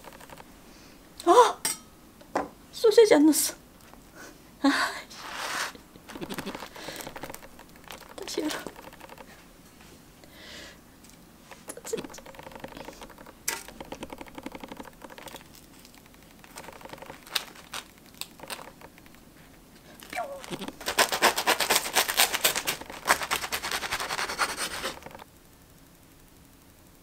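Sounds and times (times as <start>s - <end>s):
bread crust crackling: 5.1s - 9.7s, 11.0s - 25.7s
tongs and hands handling food: 11.0s - 19.2s, 19.9s - 25.2s.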